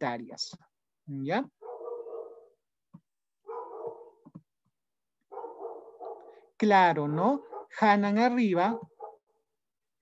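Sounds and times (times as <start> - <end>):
dog barking faintly: 1.6 - 2.5, 3.5 - 4.2, 5.3 - 6.5.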